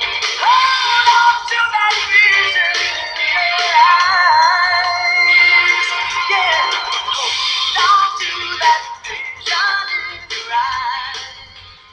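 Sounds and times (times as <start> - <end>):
person singing with vibrato: 0.0 - 11.6
music backing track: 0.0 - 11.9.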